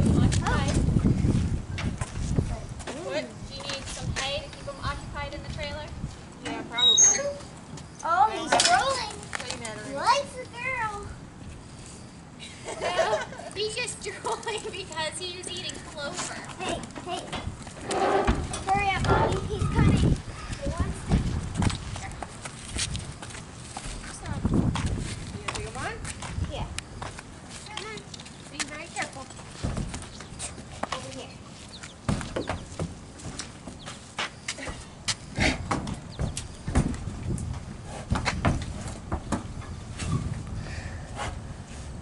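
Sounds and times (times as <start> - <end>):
horse hooves on asphalt: 13.6 - 40.6.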